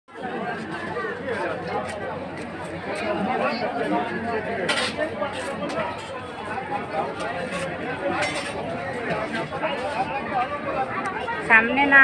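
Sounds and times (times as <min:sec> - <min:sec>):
people talking at once: 0:00.1 - 0:12.0.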